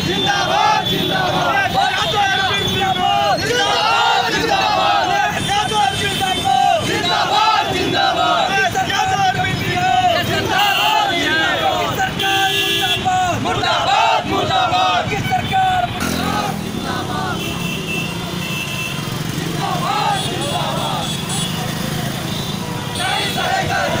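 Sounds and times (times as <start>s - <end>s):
car engines running: 0.0s - 12.2s, 13.0s - 24.0s
men chanting protest slogans: 0.0s - 17.8s, 19.0s - 24.0s.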